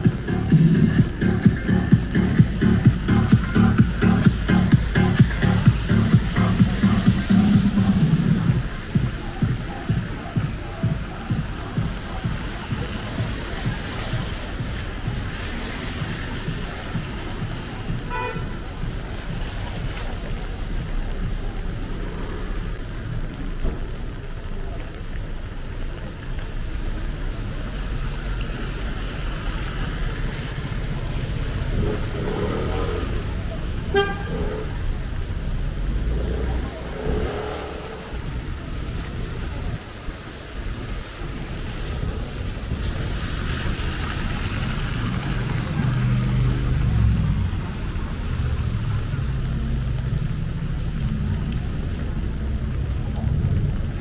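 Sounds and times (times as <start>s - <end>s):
low engine rumble: 0.0s - 54.0s
tyres on wet pavement: 0.0s - 54.0s
rain hissing: 4.0s - 52.8s
car horn toot: 18.1s - 18.6s, 33.8s - 34.6s.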